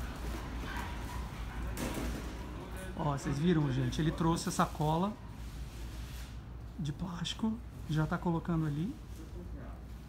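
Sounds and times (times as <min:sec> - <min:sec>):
street noise hum: 0:00.0 - 0:10.0.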